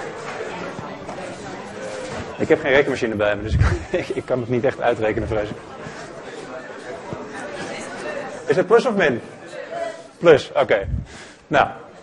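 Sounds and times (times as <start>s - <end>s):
murmur of students talking: 0.0s - 12.0s.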